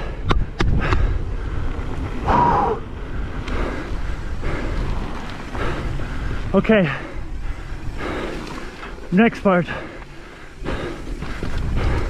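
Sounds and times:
wind on microphone: 0.0s - 8.6s, 10.6s - 12.0s
rider humming: 0.0s - 12.0s
tyres rumbling on dirt: 0.0s - 12.0s.

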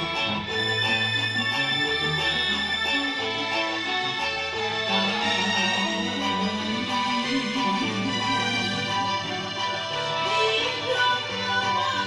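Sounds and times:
cello: 0.0s - 12.0s
guitars: 0.0s - 12.0s
keyboard: 0.0s - 12.0s
plucked strings: 0.0s - 12.0s
violin melody: 0.0s - 12.0s.

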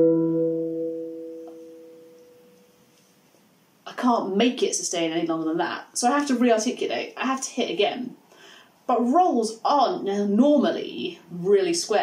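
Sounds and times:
handpan note ringing: 0.0s - 2.6s.

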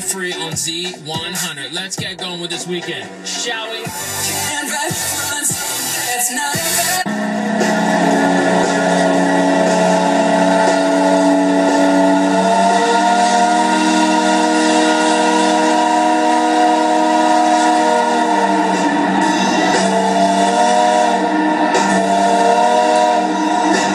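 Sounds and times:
steam whistle blast: 3.9s - 23.9s.

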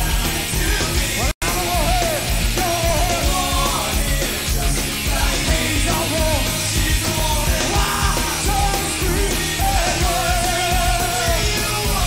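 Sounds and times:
bass guitar: 0.0s - 12.0s
distorted electric guitar: 0.0s - 12.0s
drums pounding beat: 0.0s - 12.0s
person singing and shouting: 0.0s - 12.0s.

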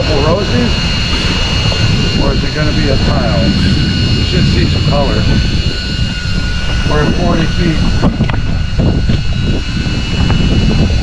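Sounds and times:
outboard engines droning: 0.0s - 11.0s
wind on microphone: 0.0s - 11.0s.

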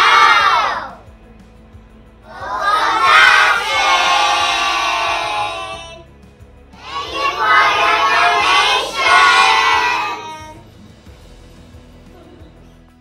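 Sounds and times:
children shouting in unison: 0.0s - 1.0s, 2.3s - 6.0s, 6.8s - 10.6s.

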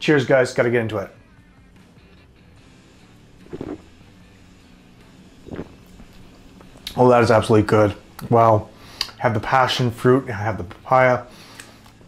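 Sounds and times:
soft swallowing: 3.4s - 4.0s, 5.4s - 6.3s.

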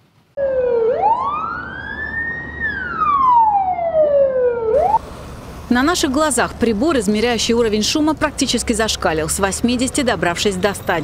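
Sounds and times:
road traffic: 0.0s - 11.0s
ambulance siren wailing: 0.4s - 5.0s.

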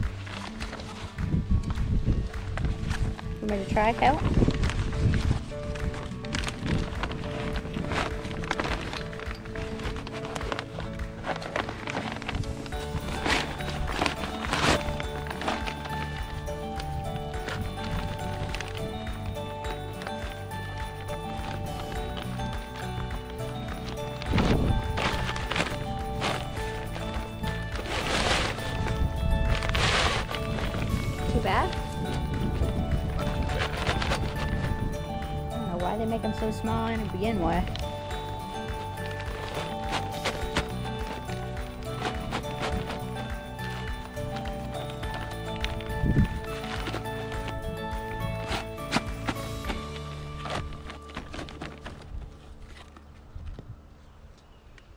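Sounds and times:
chair fabric rustling into bag: 0.0s - 1.4s, 2.5s - 53.2s
background music: 0.0s - 53.9s.

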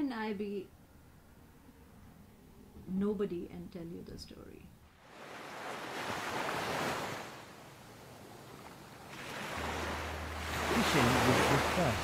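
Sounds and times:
ocean wave washing in: 9.0s - 12.0s.

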